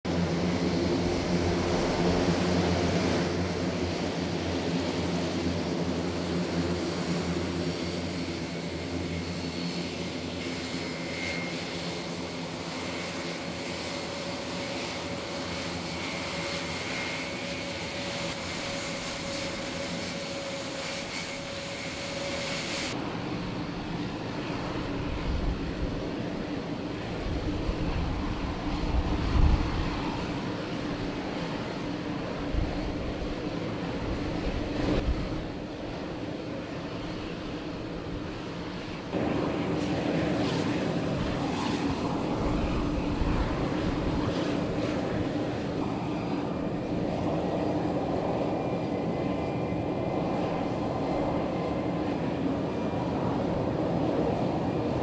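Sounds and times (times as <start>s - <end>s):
turboprop engines droning: 0.1s - 55.0s
wind buffeting microphone: 16.0s - 36.3s.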